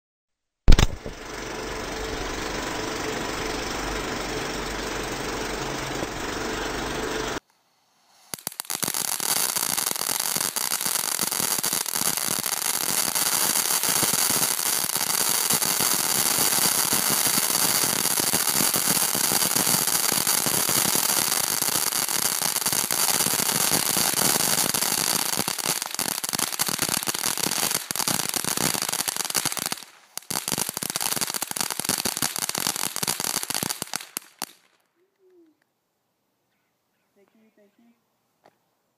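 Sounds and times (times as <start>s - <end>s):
firework hissing and crackling: 0.7s - 34.6s.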